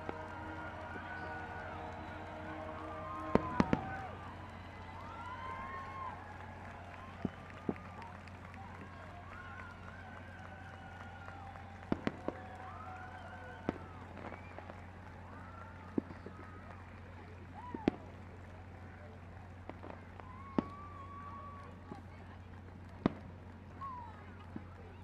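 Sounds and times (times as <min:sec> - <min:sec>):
distant fireworks bangs: 0:00.0 - 0:05.8, 0:11.8 - 0:12.4, 0:22.8 - 0:23.6.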